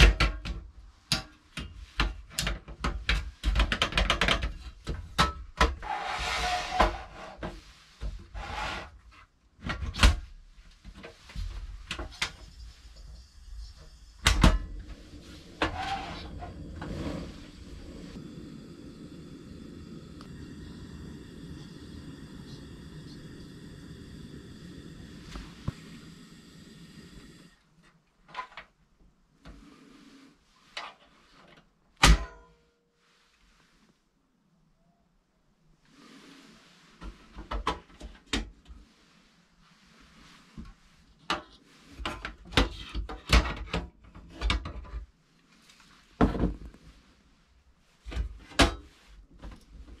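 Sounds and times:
steady low hum: 11.3s - 27.6s.

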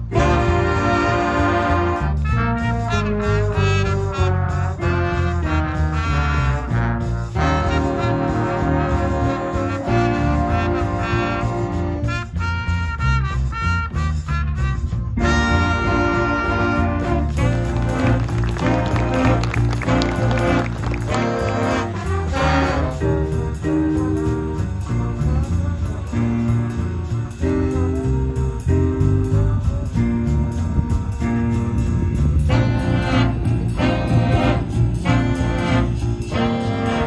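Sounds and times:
short brass chords: 0.0s - 29.7s, 30.5s - 37.0s
jazz big band playing: 0.0s - 37.0s.

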